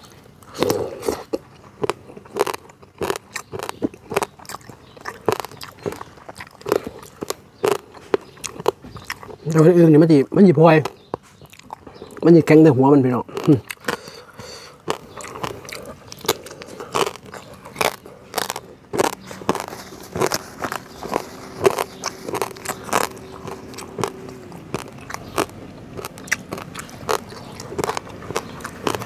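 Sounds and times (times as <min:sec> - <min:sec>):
person chewing food: 0:00.0 - 0:29.0.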